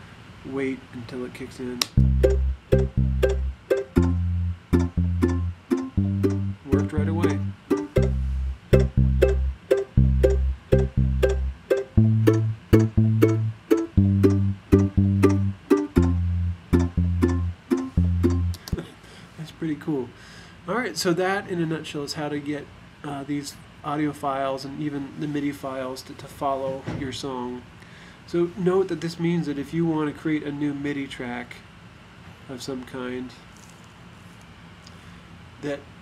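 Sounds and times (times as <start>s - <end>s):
low electric bass: 1.9s - 18.8s
picked mandolin: 4.0s - 8.2s.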